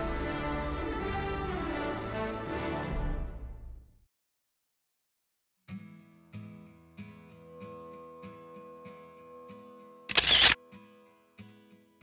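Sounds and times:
faint guitar music: 5.7s - 12.0s
camera shutter: 10.1s - 10.6s.

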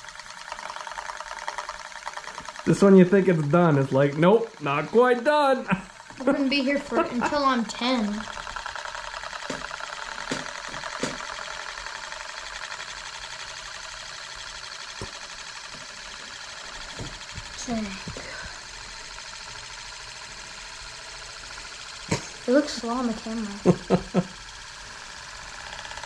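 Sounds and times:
metal disc whirring rattle: 0.0s - 26.0s.

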